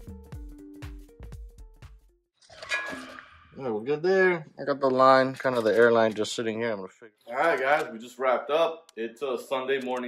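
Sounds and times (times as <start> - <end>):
metallic tool clank: 2.5 - 3.5
man speaking: 3.5 - 10.0.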